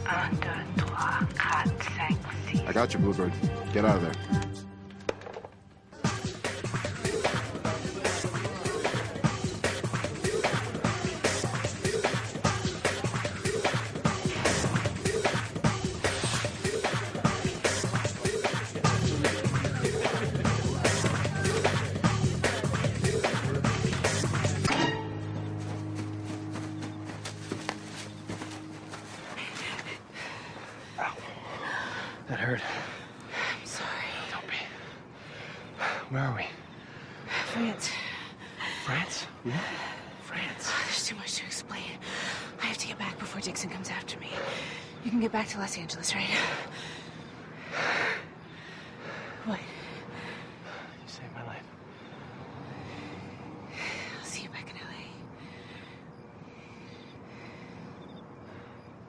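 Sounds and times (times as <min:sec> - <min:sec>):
woman whispering: 0:00.0 - 0:02.6, 0:29.2 - 0:30.1, 0:33.6 - 0:34.7, 0:40.2 - 0:46.5, 0:49.4 - 0:49.8, 0:51.1 - 0:51.7, 0:54.0 - 0:55.3
held music chord: 0:24.2 - 0:29.4
footsteps running through undergrowth: 0:25.3 - 0:30.0.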